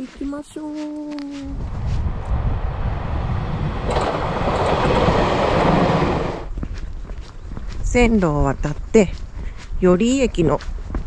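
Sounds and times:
footsteps walking: 0:00.0 - 0:02.3, 0:06.4 - 0:11.0
train passing over crossing: 0:01.6 - 0:06.5.

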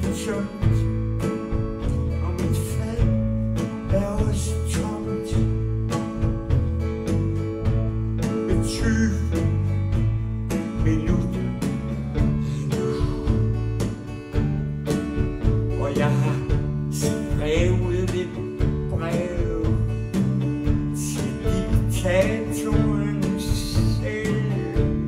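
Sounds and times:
bass: 0:00.0 - 0:25.0
drums in a steady beat: 0:00.0 - 0:25.0
electric guitar: 0:00.0 - 0:25.0.

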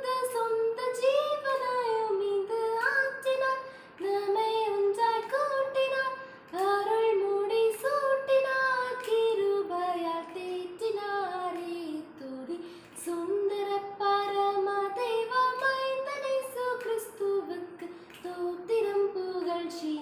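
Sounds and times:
woman singing unaccompanied: 0:00.0 - 0:20.0
singer breathing: 0:03.6 - 0:04.0, 0:06.2 - 0:06.5, 0:12.6 - 0:13.0, 0:17.9 - 0:18.2.

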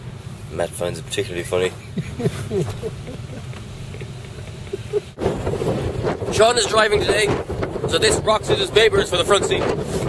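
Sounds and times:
man laughing: 0:01.7 - 0:05.2
low rumble: 0:02.5 - 0:08.9.

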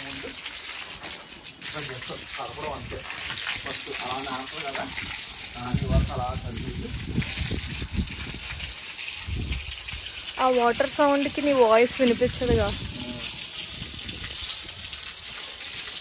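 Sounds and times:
hose water splashing on concrete: 0:00.0 - 0:16.0.

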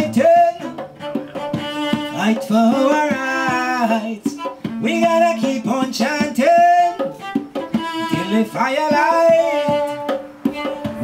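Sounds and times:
man singing a chant: 0:00.0 - 0:00.8, 0:02.1 - 0:07.1, 0:08.1 - 0:10.1
bowed cello: 0:00.0 - 0:11.0
hand drum strokes: 0:00.0 - 0:11.0.

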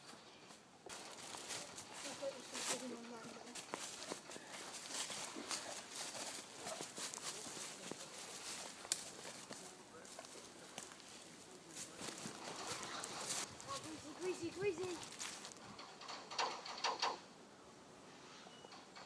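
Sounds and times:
footsteps rustling dry leaves: 0:00.0 - 0:15.8
child calling out: 0:14.0 - 0:15.1.

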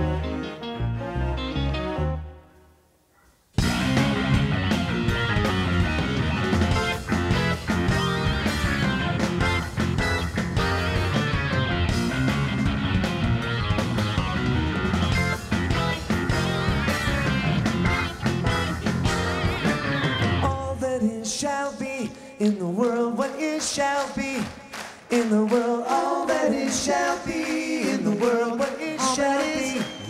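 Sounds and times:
live progressive rock band: 0:03.6 - 0:20.8.

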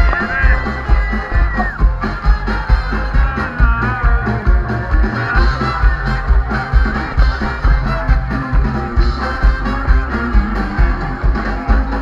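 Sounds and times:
ska band playing loudly: 0:00.0 - 0:12.0.

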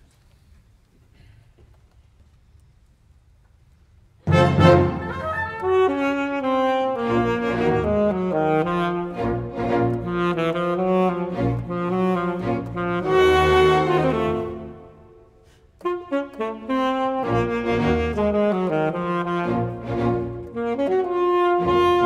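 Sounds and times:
symphony orchestra playing: 0:04.2 - 0:22.0
saxophone melody: 0:04.3 - 0:22.0.

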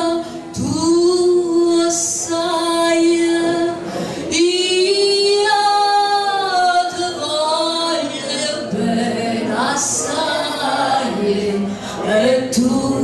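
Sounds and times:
woman singing a cappella: 0:00.0 - 0:13.0
singer's breath: 0:03.8 - 0:04.3.

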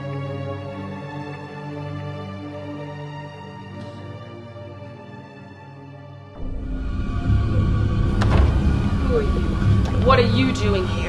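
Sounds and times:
loud low rumbling drone: 0:06.4 - 0:11.0.

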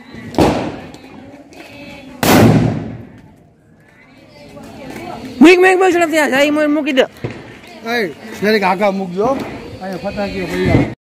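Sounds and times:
firecracker bang: 0:00.2 - 0:00.9, 0:02.2 - 0:03.1.

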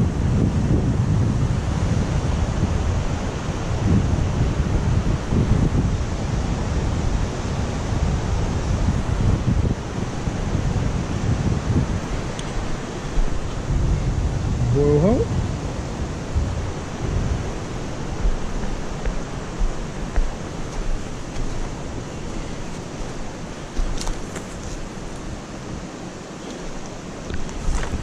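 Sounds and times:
river water rushing: 0:00.0 - 0:28.0
wind buffeting microphone: 0:00.0 - 0:28.0.

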